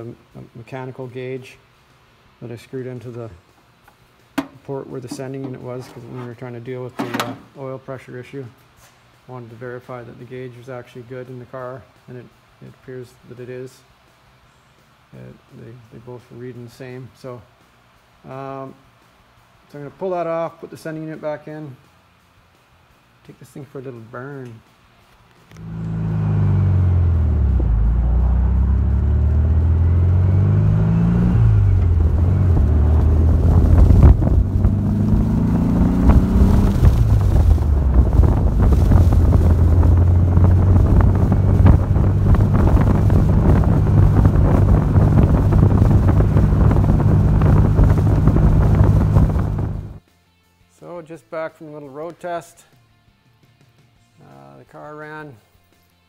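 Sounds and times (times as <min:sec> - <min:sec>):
car engine accelerating through gears: 0:25.5 - 0:50.0.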